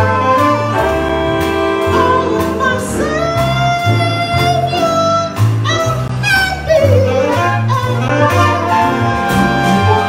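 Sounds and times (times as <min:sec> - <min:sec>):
live jazz band: 0:00.0 - 0:10.0
upright bass notes: 0:00.0 - 0:10.0
girl singing jazz vocals: 0:01.7 - 0:09.0.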